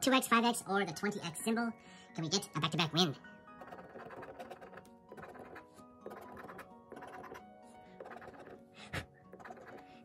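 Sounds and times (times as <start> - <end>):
soft background music: 0.0 - 10.0
scraping lottery ticket: 3.6 - 7.4, 8.0 - 8.6, 9.3 - 10.0.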